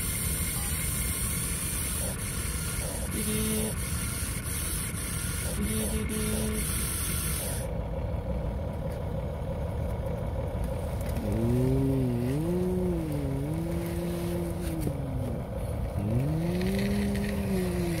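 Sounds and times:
person imitating truck engine: 0:00.0 - 0:07.8, 0:11.1 - 0:18.0
steady low rumble: 0:00.0 - 0:18.0.

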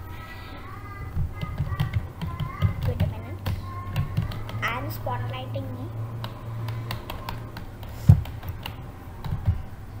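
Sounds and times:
computer keyboard clicking: 0:01.4 - 0:04.7, 0:06.2 - 0:09.6.

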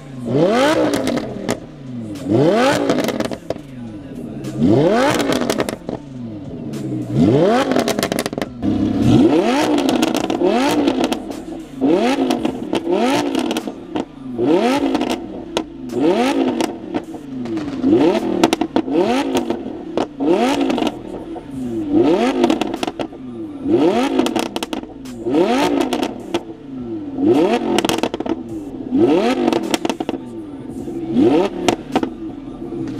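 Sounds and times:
car engine revving: 0:00.0 - 0:32.9
exhaust crackles: 0:00.0 - 0:32.9.

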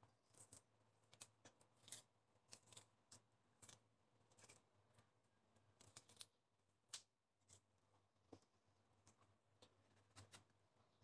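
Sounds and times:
fingers peeling fruit skin: 0:00.1 - 0:07.8.

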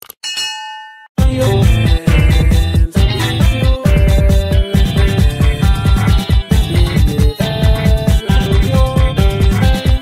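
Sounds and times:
bright bell-like ding: 0:00.2 - 0:01.2
electronic music with heavy beat: 0:01.2 - 0:10.0.

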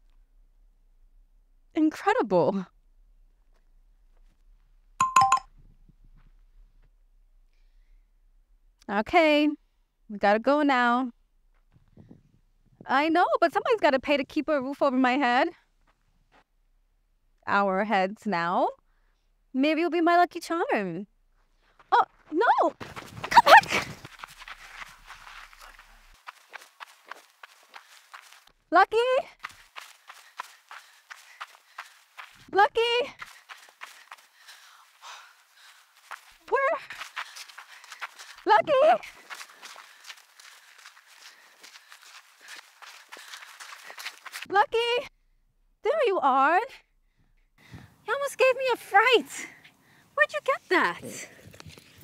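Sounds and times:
phone notification chimes: 0:05.0 - 0:05.5
hurried footsteps on gravel: 0:21.4 - 0:44.5.

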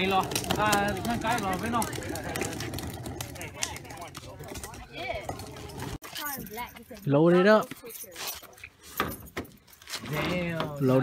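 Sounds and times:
group talking: 0:00.0 - 0:08.9.

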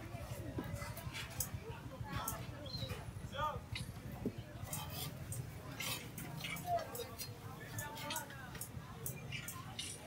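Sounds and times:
crowd chatter: 0:00.0 - 0:10.0
utensils clicking and tapping: 0:04.6 - 0:10.0.

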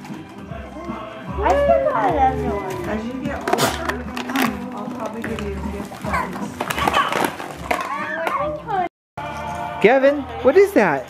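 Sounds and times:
background music: 0:00.0 - 0:11.0
people and children talking: 0:01.4 - 0:04.0, 0:04.7 - 0:08.9.

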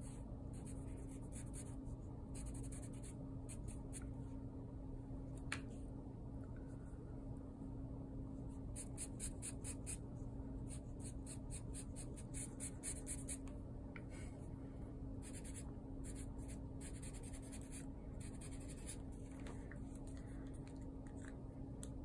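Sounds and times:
faint low hum: 0:00.0 - 0:22.0
marker scratching on paper: 0:02.4 - 0:04.0, 0:10.7 - 0:13.4, 0:15.2 - 0:19.1.

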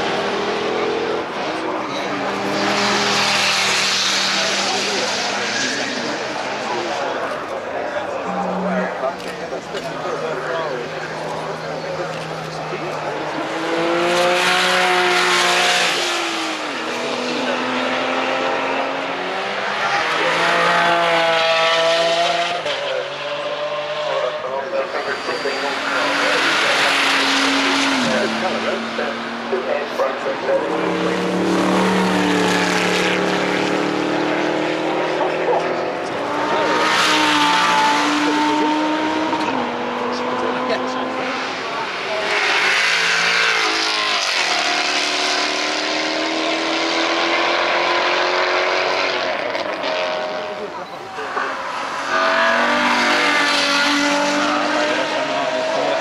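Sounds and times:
sports cars accelerating past: 0:00.0 - 0:56.0.

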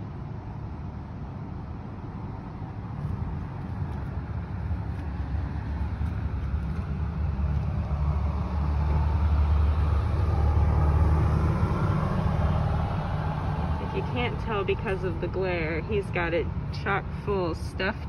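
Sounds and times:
vehicle engine rumble passing: 0:00.0 - 0:18.0.

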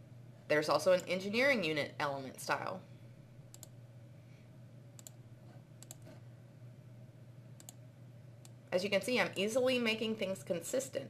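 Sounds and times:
faint low hum: 0:00.0 - 0:11.0
computer mouse clicks: 0:03.5 - 0:03.8, 0:05.0 - 0:05.2, 0:05.8 - 0:06.2, 0:07.6 - 0:07.8.

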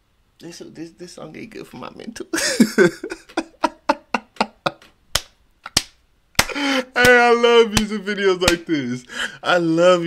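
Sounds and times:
man laughing: 0:02.4 - 0:04.9, 0:06.4 - 0:09.7.

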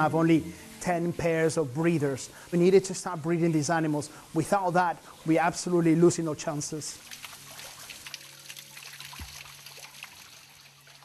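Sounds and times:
low steady hum: 0:00.0 - 0:11.0
water trickling and dripping: 0:00.0 - 0:11.0.

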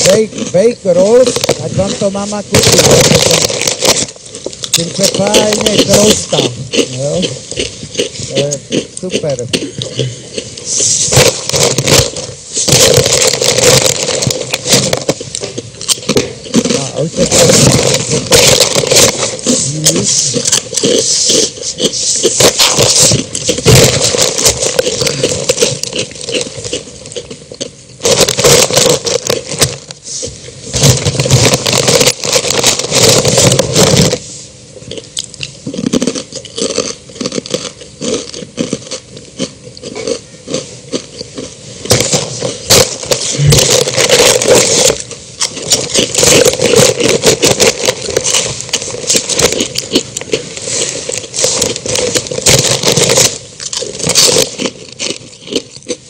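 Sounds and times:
crackling and scraping noise: 0:00.0 - 0:56.0.

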